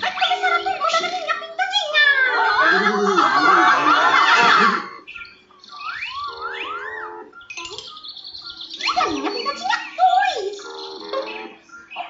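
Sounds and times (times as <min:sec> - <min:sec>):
cartoon music from a tv: 0:00.0 - 0:12.0
chirping whistle-like notes: 0:02.2 - 0:12.0.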